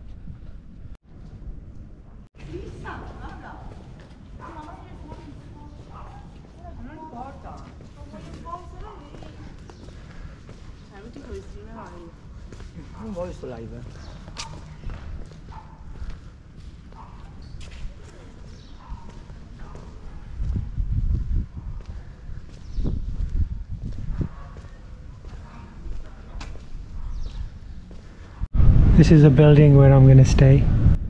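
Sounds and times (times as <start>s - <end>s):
wind rumbling on microphone: 0.0s - 12.5s, 13.9s - 31.0s
footsteps on stone paving: 2.6s - 28.5s.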